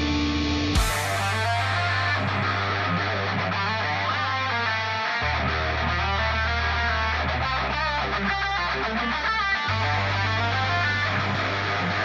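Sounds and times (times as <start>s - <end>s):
steady low note: 0.0s - 3.8s
electric guitar metal riff: 0.0s - 12.0s.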